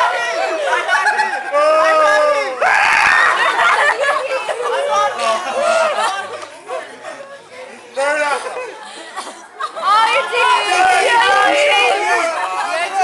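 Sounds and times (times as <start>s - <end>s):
people laughing: 0.1s - 13.0s
people making screeching cries: 2.6s - 3.6s.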